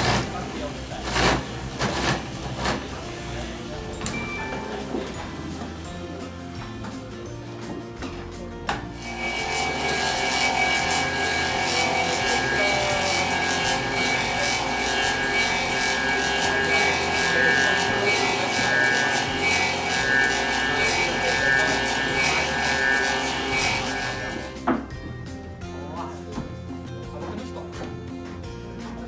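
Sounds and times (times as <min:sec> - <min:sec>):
lathe cutting wood: 0:00.0 - 0:06.1, 0:09.0 - 0:24.7.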